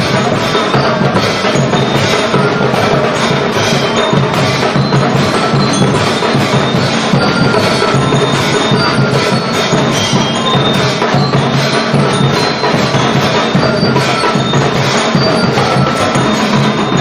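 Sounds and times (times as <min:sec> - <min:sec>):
metal-bar lyres melody: 0:00.0 - 0:17.0
snare and bass drums beat: 0:00.0 - 0:17.0.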